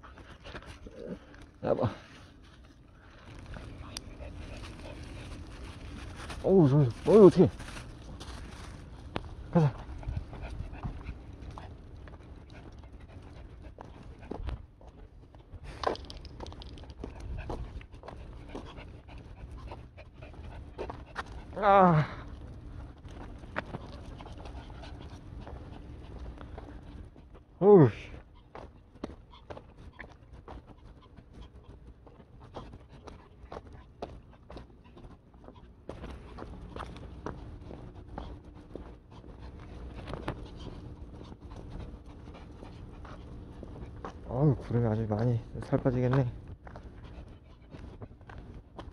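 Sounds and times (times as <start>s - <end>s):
dogs panting: 0.0s - 48.9s
paws and steps on pavement: 0.0s - 48.9s.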